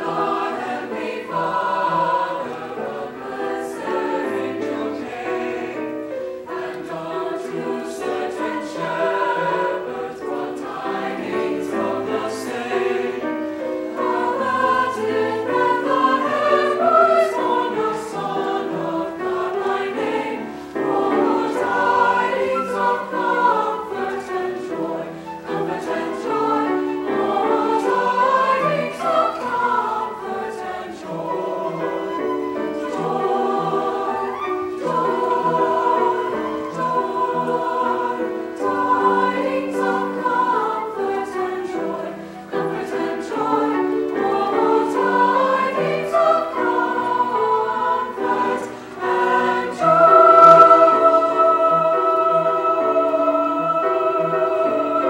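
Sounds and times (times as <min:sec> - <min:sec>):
choir singing in harmony: 0:00.0 - 0:55.0.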